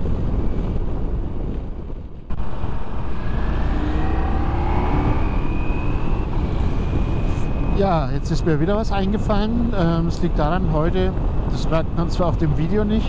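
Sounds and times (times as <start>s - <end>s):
wind rush: 0.0s - 13.0s
motorcycle engine: 2.2s - 7.8s
faint engine whine: 2.2s - 13.0s.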